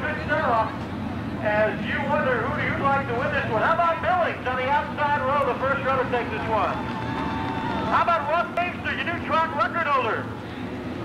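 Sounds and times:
man speaking over loudspeaker: 0.0 - 0.8, 1.4 - 6.8, 7.9 - 10.4.

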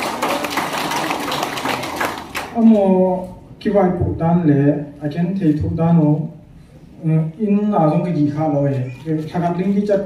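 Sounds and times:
applause: 0.0 - 2.6.

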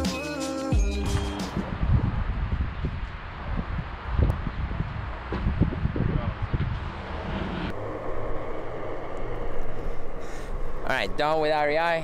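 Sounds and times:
wind and wheel rumble: 1.5 - 12.0.

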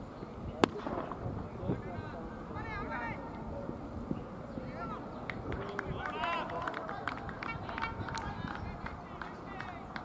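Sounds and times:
distant voices of players: 0.0 - 10.0
steady background noise: 0.0 - 10.0.

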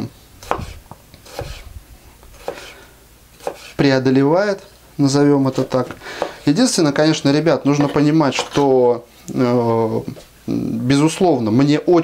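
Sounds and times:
blade tapping cutting board: 0.4 - 1.6, 3.4 - 3.7
knife slicing tomato: 0.4 - 1.7, 2.3 - 2.8, 3.4 - 3.8.

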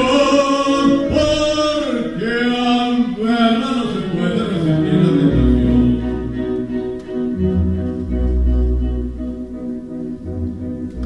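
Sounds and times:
low bass line: 4.6 - 11.0.

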